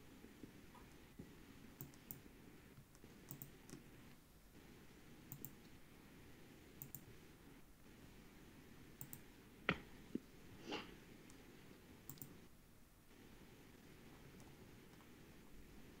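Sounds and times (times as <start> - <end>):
faint room hiss: 0.0 - 16.0
computer mouse clicks: 1.8 - 2.2, 2.8 - 3.9, 5.3 - 5.8, 6.8 - 7.1, 9.0 - 9.3, 12.0 - 12.4, 14.3 - 15.1.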